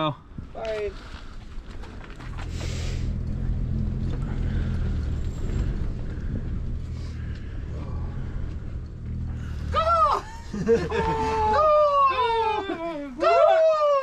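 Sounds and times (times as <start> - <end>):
low motor rumble: 0.2 - 14.0.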